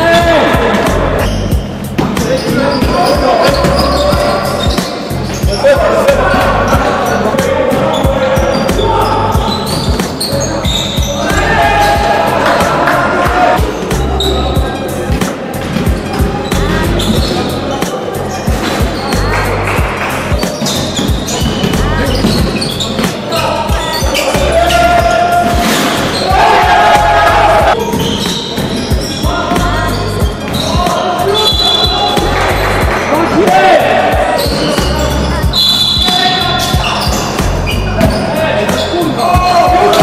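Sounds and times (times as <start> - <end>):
music with bass line: 0.0 - 40.0.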